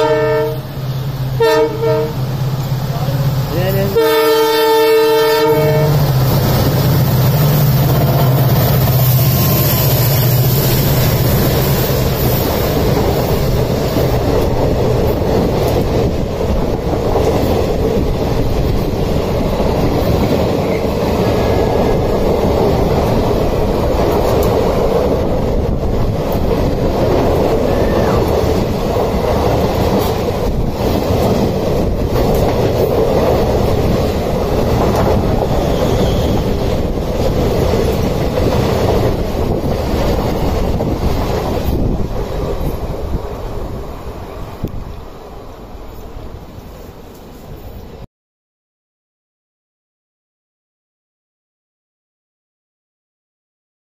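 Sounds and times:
diesel locomotive engine hum: 0.0 - 48.1
train coaches rumbling: 0.0 - 48.1
train wheel clatter: 6.1 - 43.7.

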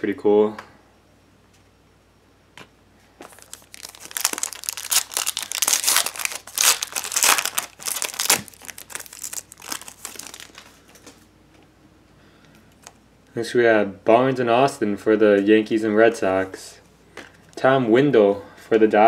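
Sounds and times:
foil wrapper tearing and crinkling: 3.3 - 10.8.

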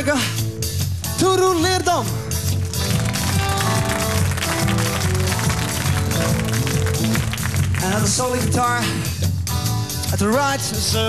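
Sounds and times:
bass and guitar notes: 0.0 - 11.0
drum kit steady beat: 0.0 - 11.0.

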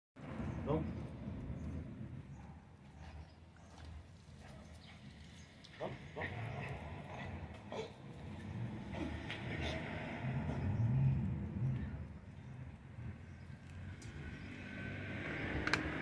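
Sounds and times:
steady low rumble: 0.2 - 14.3.

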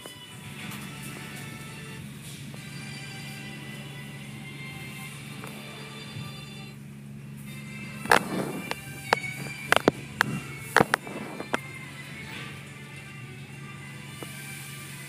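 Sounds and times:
car wash machinery hum: 0.0 - 15.0.

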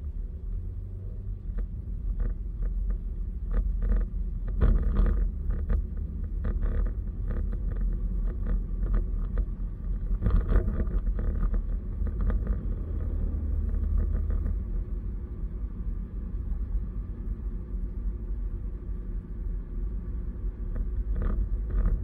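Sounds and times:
tyre and engine rumble in car: 0.0 - 22.0.

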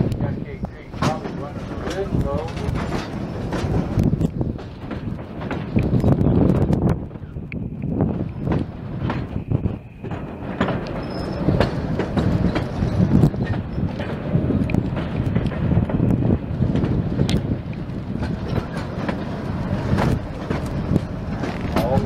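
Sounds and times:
train running gear rumbling: 0.0 - 22.0
wheels clacking over rails: 0.0 - 22.0.

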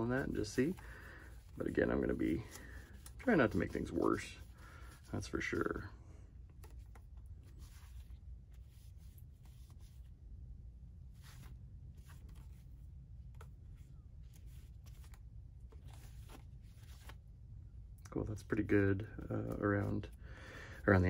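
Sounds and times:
paper towel rubbing on plastic: 0.0 - 5.8, 7.4 - 10.1
steady low hum: 0.0 - 21.0.

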